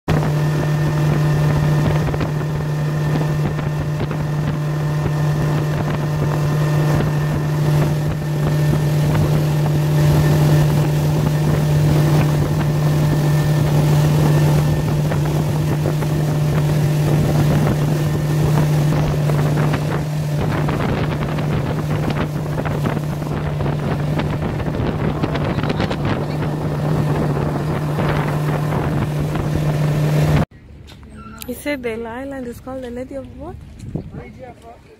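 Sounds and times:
rushing water wake: 0:00.1 - 0:30.5
wind buffeting microphone: 0:00.1 - 0:30.5, 0:33.0 - 0:34.9
motorboat engine drone: 0:00.1 - 0:34.5.

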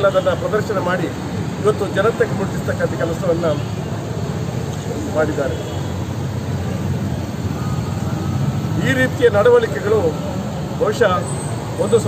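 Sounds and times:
man speaking: 0:00.0 - 0:03.7, 0:08.8 - 0:11.2
low roadside rumble: 0:00.0 - 0:12.0.

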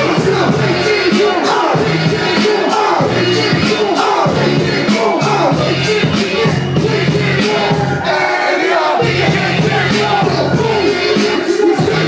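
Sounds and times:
crowd yelling: 0:00.0 - 0:12.0
rapping over a beat: 0:00.0 - 0:12.0.

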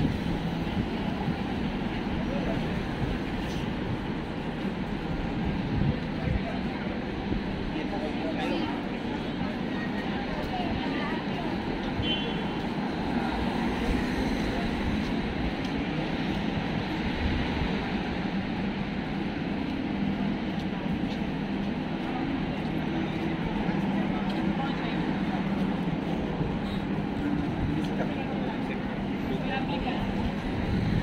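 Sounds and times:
passers-by talking: 0:00.0 - 0:31.0
road traffic: 0:00.0 - 0:31.0.

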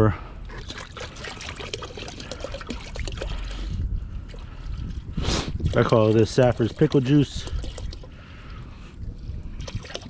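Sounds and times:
liquid pouring into bucket: 0:00.5 - 0:03.6, 0:05.6 - 0:08.1, 0:09.6 - 0:10.0.

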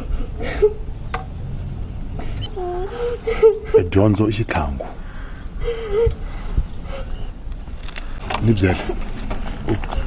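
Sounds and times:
girl crying quietly: 0:02.2 - 0:03.8.

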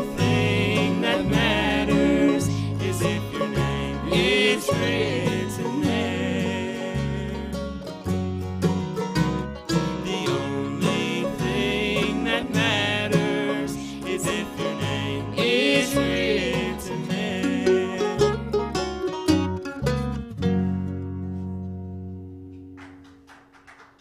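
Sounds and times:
fiddle: 0:00.0 - 0:22.1
banjo: 0:00.0 - 0:22.8
electric bass: 0:00.0 - 0:22.8
mandolin: 0:00.0 - 0:23.3
acoustic guitar: 0:00.0 - 0:23.6.

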